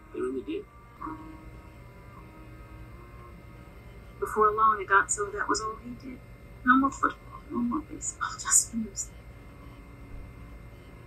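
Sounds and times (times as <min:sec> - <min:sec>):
faint tone: 0:00.0 - 0:11.0
low steady hum: 0:00.0 - 0:11.0.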